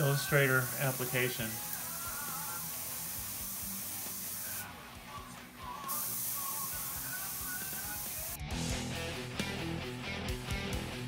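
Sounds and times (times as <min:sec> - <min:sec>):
airbrush hissing: 0:00.0 - 0:04.7, 0:05.8 - 0:08.4
faint background music: 0:00.0 - 0:11.0.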